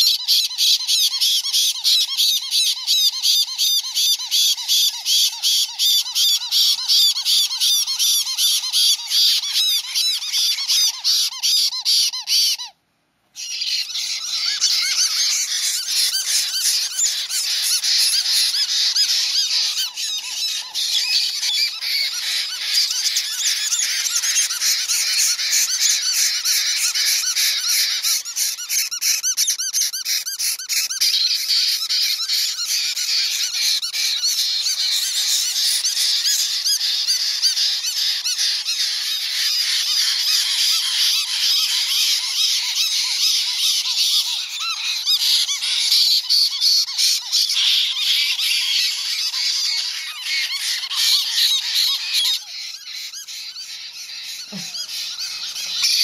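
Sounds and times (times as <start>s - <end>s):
parrot chicks screaming: 0.0s - 12.8s, 13.4s - 56.0s.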